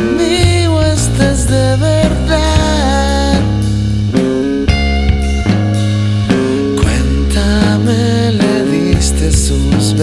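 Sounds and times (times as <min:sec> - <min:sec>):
bass guitar: 0:00.0 - 0:10.0
electric guitar chords: 0:00.0 - 0:10.0.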